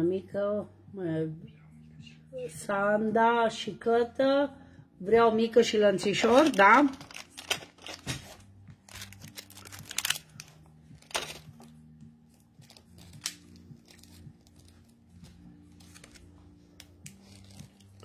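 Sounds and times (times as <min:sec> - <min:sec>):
packaging rustling and crinkling: 0:06.2 - 0:11.8, 0:12.6 - 0:18.0.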